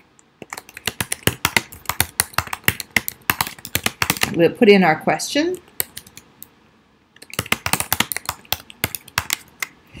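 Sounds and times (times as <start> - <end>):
computer keyboard typing: 0.4 - 4.4, 5.6 - 6.5, 7.2 - 9.8.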